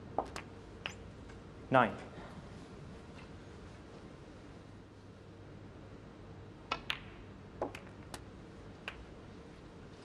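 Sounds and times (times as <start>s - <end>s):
snooker balls clicking: 0.2s - 1.4s, 6.7s - 9.2s.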